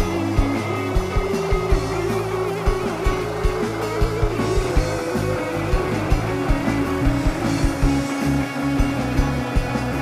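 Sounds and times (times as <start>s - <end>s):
drums: 0.0s - 10.0s
electric guitar: 0.0s - 10.0s
sustained bass notes: 0.0s - 10.0s.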